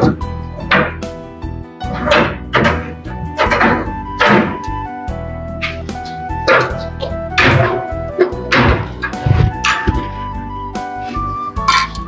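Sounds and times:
dull thumps: 0.0s - 1.2s, 1.8s - 5.0s, 5.7s - 10.4s
background music with steady tones: 0.0s - 12.0s.

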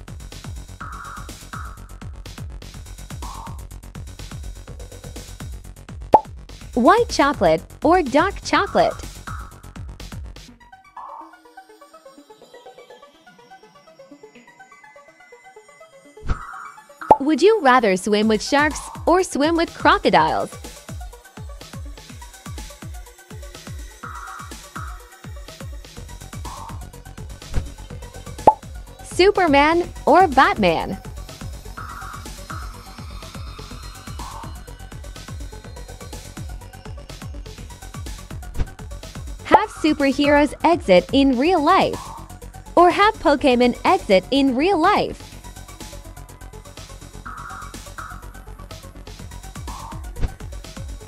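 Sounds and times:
electronic music with kick drum: 0.2s - 3.8s, 23.8s - 45.5s, 46.6s - 51.0s
electronic music with beat: 3.1s - 3.7s, 17.1s - 20.5s, 26.3s - 27.0s, 28.4s - 31.0s, 39.5s - 45.2s, 47.1s - 51.0s
person speaking: 6.8s - 9.0s, 17.2s - 20.5s, 29.1s - 31.0s, 39.5s - 42.0s, 42.8s - 45.2s
rising plop sound effect: 17.0s - 17.3s.

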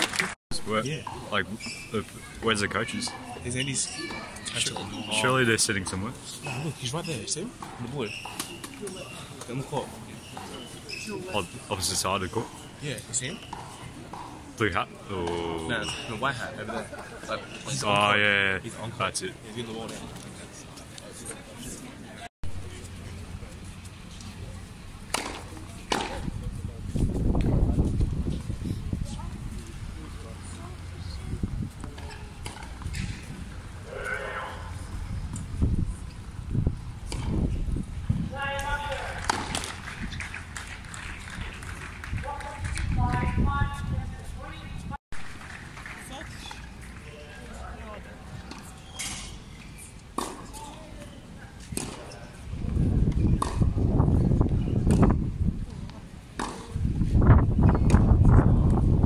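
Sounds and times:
tennis balls struck by racquets: 25.0s - 26.4s, 38.5s - 40.5s, 50.1s - 50.8s, 51.6s - 52.2s, 52.8s - 54.2s, 56.4s - 56.8s
tennis ball pops: 25.1s - 26.2s.

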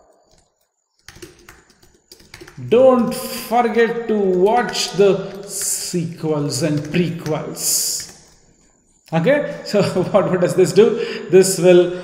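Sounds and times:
keyboard typing: 0.0s - 8.5s.

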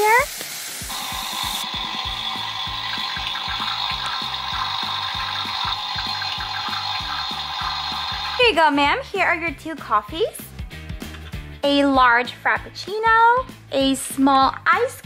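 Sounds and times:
espresso machine hissing: 0.8s - 8.4s
background music with steady beat: 0.8s - 15.0s.

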